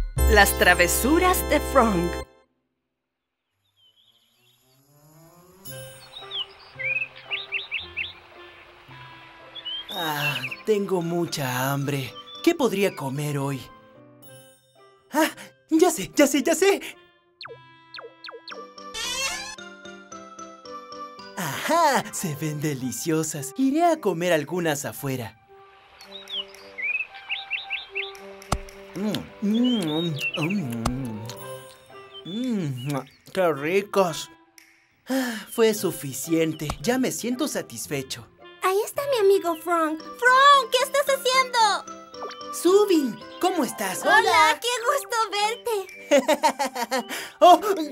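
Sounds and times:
soft background music: 0.2s - 2.5s, 4.8s - 47.9s
bird chirps: 3.4s - 4.8s, 5.7s - 11.0s, 11.7s - 13.3s, 17.4s - 19.6s, 26.0s - 33.4s, 42.1s - 46.4s.

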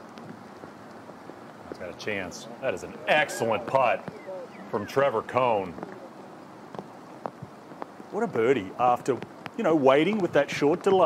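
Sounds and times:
faint steady hiss: 0.0s - 11.0s
soft ticks: 9.1s - 10.9s.

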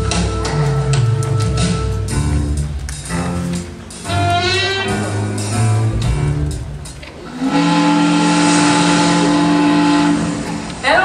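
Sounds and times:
long steady horn blast: 7.3s - 11.0s.

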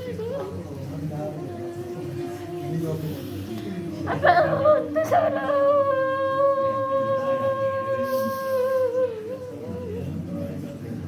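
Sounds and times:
person singing a crying lament: 4.0s - 10.2s.

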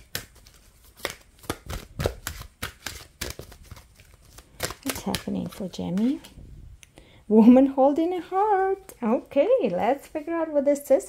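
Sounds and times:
cards being shuffled: 0.0s - 6.4s.

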